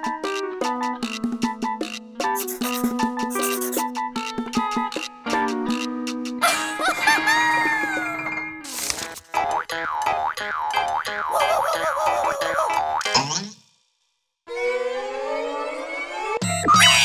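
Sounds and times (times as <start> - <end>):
music: 0.0 - 13.0, 16.4 - 17.0.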